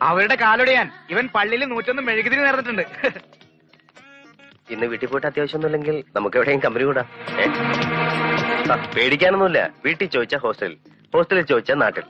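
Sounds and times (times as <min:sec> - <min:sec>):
faint background music: 0:00.0 - 0:12.0
film dialogue: 0:00.0 - 0:12.0.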